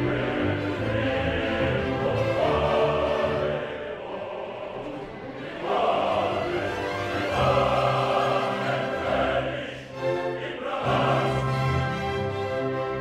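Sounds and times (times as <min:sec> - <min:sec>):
male opera chorus singing: 0:00.0 - 0:12.3
orchestra playing: 0:00.0 - 0:13.0.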